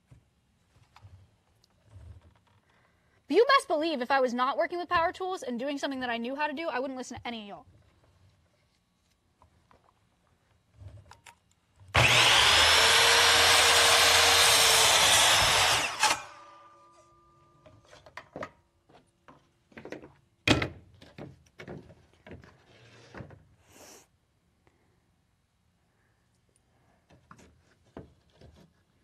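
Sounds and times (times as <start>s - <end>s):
miter saw cutting wood: 11.9s - 16.7s.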